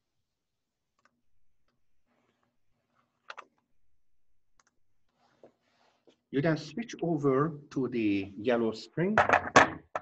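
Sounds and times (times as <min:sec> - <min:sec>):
computer mouse clicks: 0:04.6 - 0:04.8.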